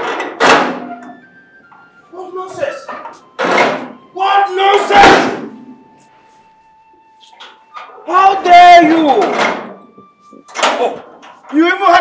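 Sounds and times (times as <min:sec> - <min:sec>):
metal gate banging: 0:00.0 - 0:01.3, 0:02.4 - 0:05.8, 0:07.4 - 0:09.9, 0:10.5 - 0:12.0.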